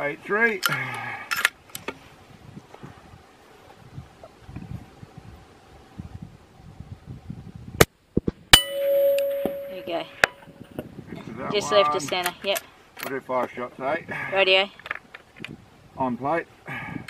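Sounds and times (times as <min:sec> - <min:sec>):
bullet clanging on steel plate: 0:08.6 - 0:10.5.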